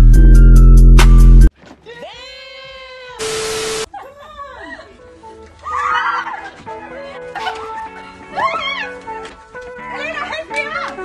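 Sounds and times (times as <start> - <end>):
music: 0.0 - 1.5, 4.3 - 11.0.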